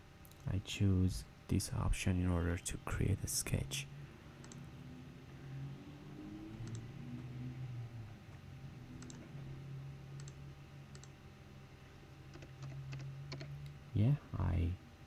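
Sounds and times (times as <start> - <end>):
low steady hum: 0.0 - 15.0
computer mouse clicks: 4.4 - 4.6, 6.6 - 7.3, 9.0 - 9.3, 10.2 - 11.2, 12.3 - 13.8.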